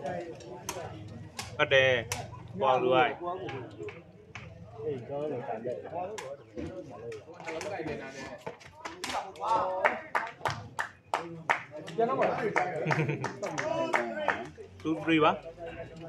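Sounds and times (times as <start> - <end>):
spectators chattering and calling out: 0.0 - 16.0.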